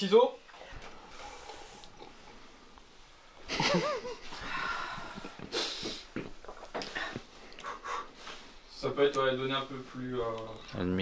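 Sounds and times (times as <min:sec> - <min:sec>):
person sipping from mug: 0:00.5 - 0:02.6, 0:05.1 - 0:08.4
nose breathing: 0:00.8 - 0:02.2, 0:04.3 - 0:08.6.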